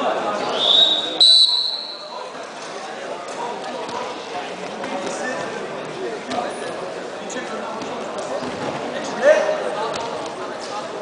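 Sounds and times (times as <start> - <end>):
murmur of voices: 0.0 - 11.0
referee's whistle blast: 0.5 - 2.2.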